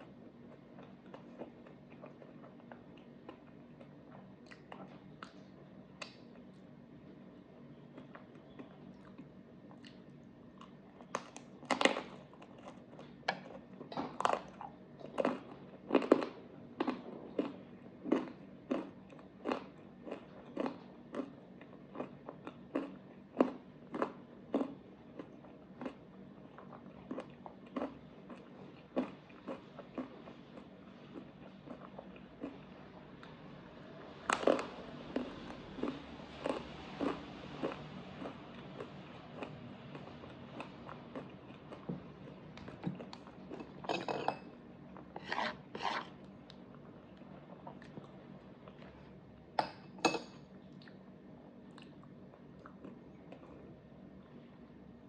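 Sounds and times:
chewing crunchy pretzel: 0:00.0 - 0:06.7, 0:07.9 - 0:33.4, 0:34.2 - 0:43.9, 0:50.5 - 0:54.4
spoon scraping ice cream cake: 0:45.1 - 0:46.3.

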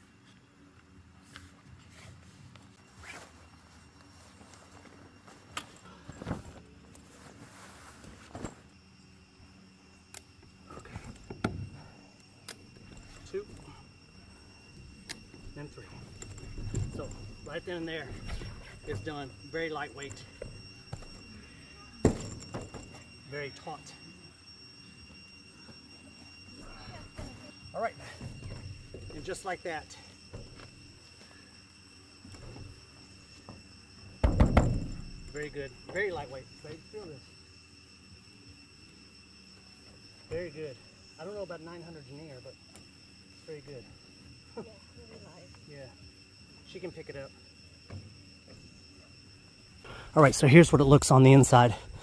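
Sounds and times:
steady high tone: 0:11.7 - 0:34.2, 0:48.6 - 0:52.0.

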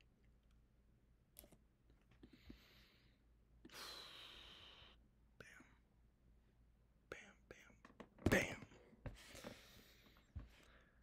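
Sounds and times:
man whispering: 0:05.4 - 0:05.8, 0:07.0 - 0:08.9.

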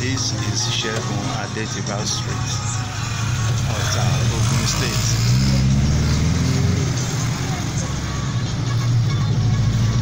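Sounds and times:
car engine running: 0:00.0 - 0:10.0
road noise: 0:00.0 - 0:10.0.

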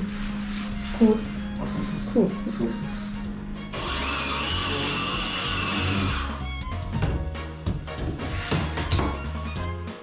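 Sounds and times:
circular saw cutting flooring: 0:00.0 - 0:06.5.

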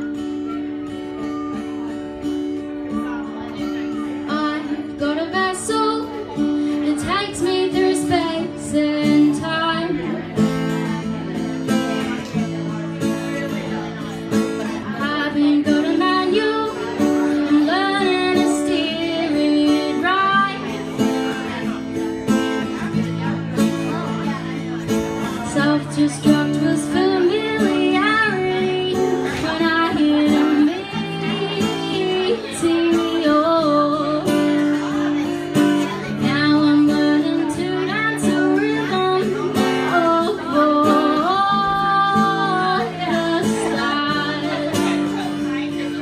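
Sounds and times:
acoustic guitar playing: 0:00.0 - 0:46.0
woman singing: 0:04.1 - 0:10.5, 0:14.6 - 0:21.1, 0:25.2 - 0:46.0.

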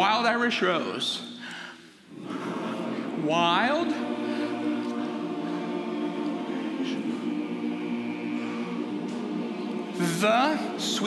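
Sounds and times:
chorus humming a sustained chord: 0:02.1 - 0:11.0.

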